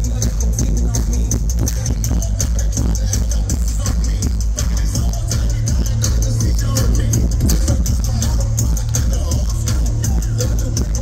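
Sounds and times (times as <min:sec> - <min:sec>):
dance music over loudspeakers: 0:00.0 - 0:11.0
heavy bass line: 0:00.0 - 0:11.0.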